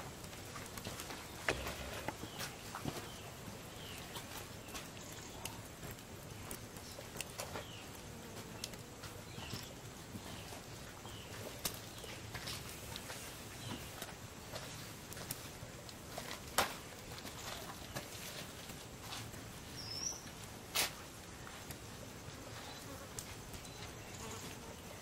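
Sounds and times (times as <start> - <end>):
wood fire crackling: 0.0 - 25.0.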